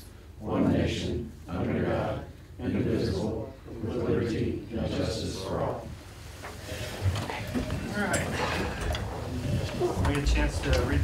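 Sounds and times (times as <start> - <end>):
chairs creaking and shuffling: 6.0 - 11.0.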